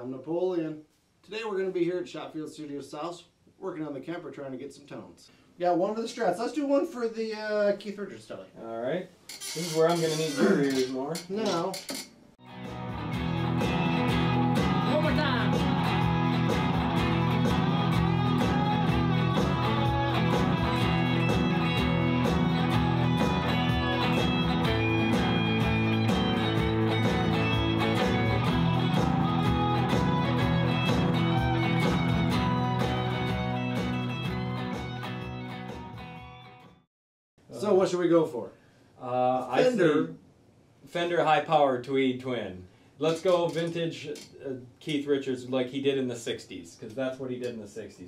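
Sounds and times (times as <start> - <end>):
band electric guitar music: 12.4 - 36.8.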